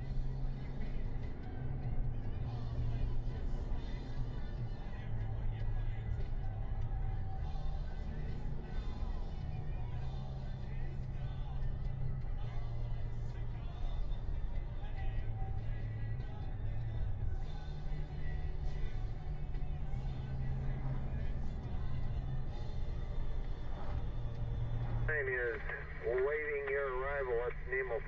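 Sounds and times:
car engine and road noise: 0.0s - 28.0s
music playing: 0.0s - 28.0s.

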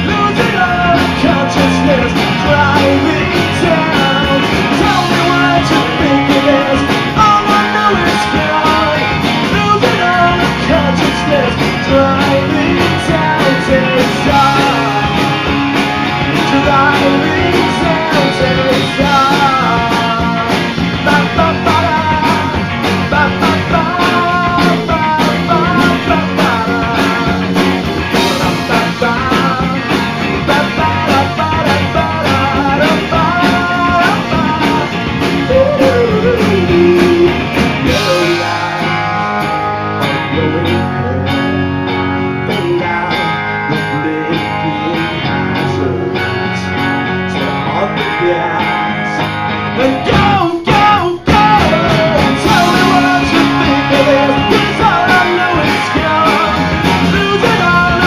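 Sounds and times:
person singing: 0.0s - 41.6s, 42.3s - 58.0s
drum kit: 0.0s - 58.0s
electric guitars: 0.0s - 58.0s.

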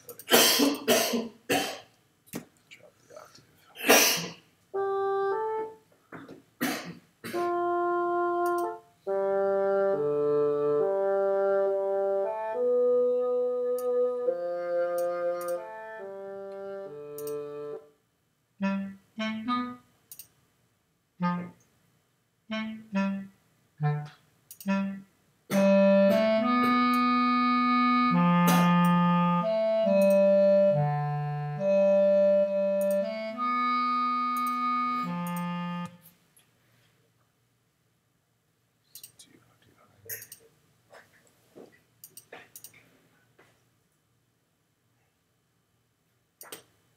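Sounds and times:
bass clarinet line: 4.8s - 5.8s, 7.4s - 17.9s, 18.6s - 19.9s, 21.2s - 21.6s, 22.5s - 36.0s
bassoon line: 4.8s - 5.8s, 7.3s - 17.9s, 18.6s - 19.8s, 21.2s - 21.6s, 22.5s - 36.0s.

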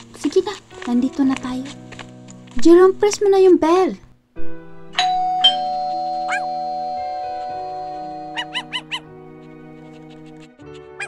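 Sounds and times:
soft background music: 0.0s - 11.0s
two-note doorbell chime: 5.0s - 8.8s.

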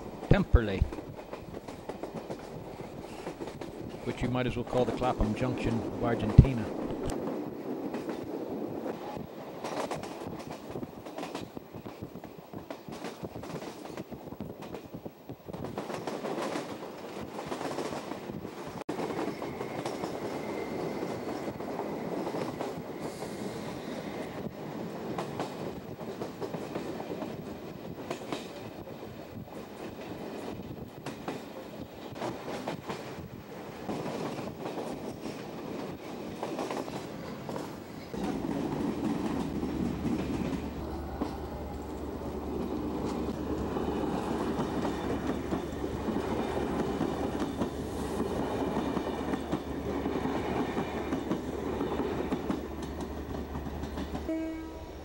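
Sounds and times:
train wheels clicking over joints: 0.0s - 54.3s
train rumble and hum: 0.0s - 55.0s.

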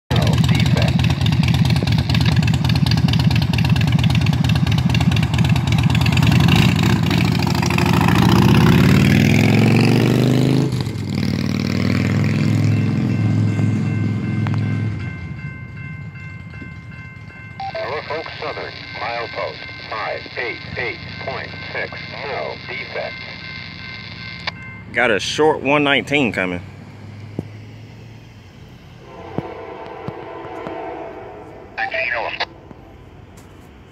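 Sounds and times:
motorcycle engine revving: 0.1s - 14.9s.

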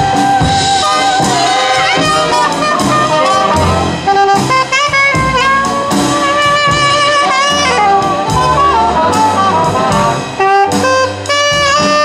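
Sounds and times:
jazz big band playing: 0.0s - 12.0s
saxophone solo: 0.0s - 12.0s.

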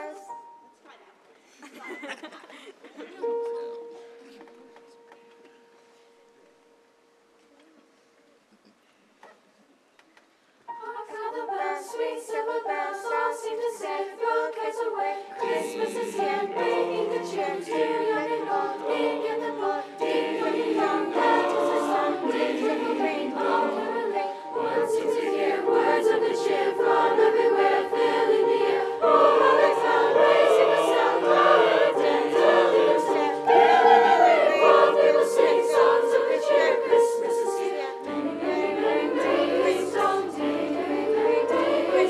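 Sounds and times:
mixed choir singing in harmony: 0.0s - 0.6s, 10.7s - 42.0s.

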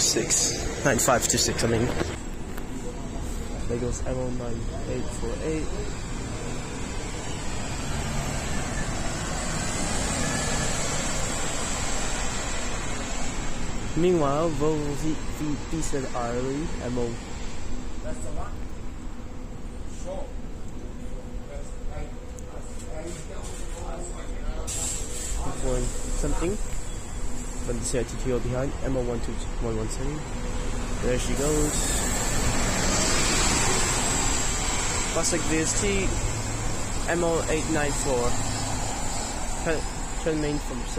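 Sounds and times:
bus engine rumble: 0.0s - 40.9s
tyre and road noise: 0.0s - 40.9s.

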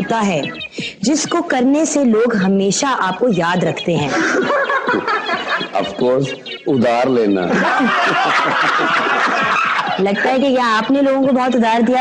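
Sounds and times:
crowd laughing: 4.0s - 11.2s.

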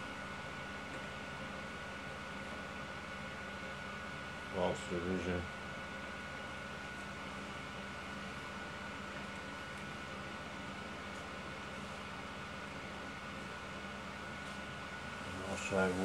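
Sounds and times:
low electrical hum and hiss: 0.0s - 16.0s.

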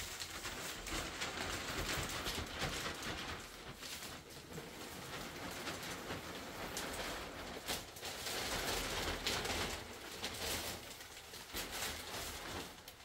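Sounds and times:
plastic sheet rustling: 0.0s - 13.0s.

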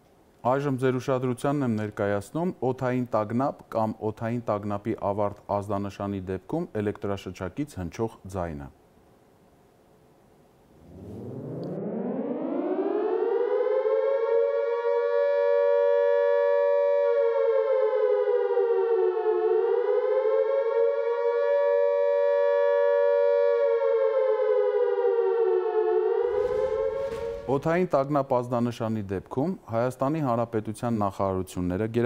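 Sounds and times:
civil defence siren wailing: 10.8s - 27.9s.

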